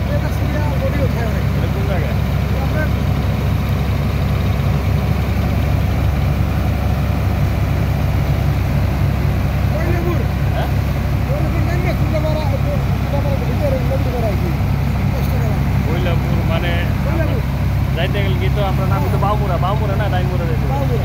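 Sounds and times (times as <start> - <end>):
diesel engine droning: 0.0 - 21.0.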